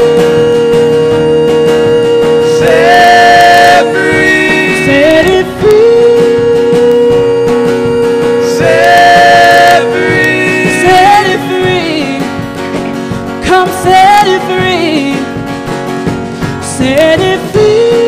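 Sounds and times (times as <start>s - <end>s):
long held melody line: 0.0s - 12.8s
acoustic guitar: 0.0s - 18.0s
drum kit: 0.0s - 18.0s
keyboard: 0.0s - 18.0s.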